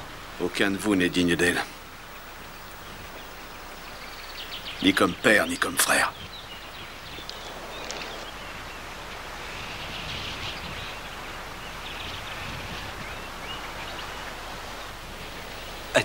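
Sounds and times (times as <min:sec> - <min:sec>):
film soundtrack hiss: 0:00.0 - 0:16.0.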